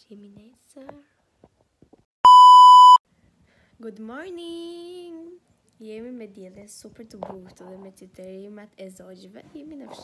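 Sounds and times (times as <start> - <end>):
high steady test tone beep: 2.2 - 3.0.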